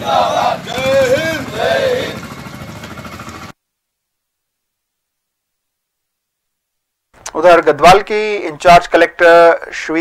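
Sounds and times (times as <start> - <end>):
outdoor crowd noise: 0.0 - 3.3.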